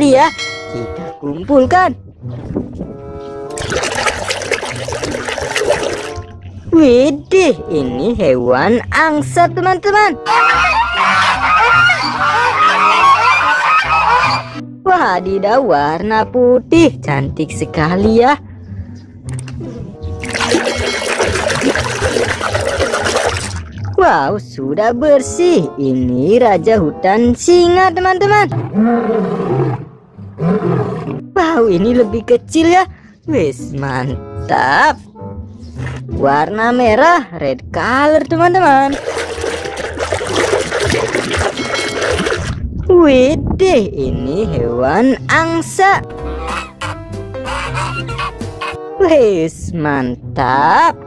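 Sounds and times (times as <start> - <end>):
background music: 0.0 - 51.0
water sloshing in plastic basin: 3.5 - 6.5, 20.2 - 24.0, 38.8 - 42.6
lion roaring: 28.5 - 31.3.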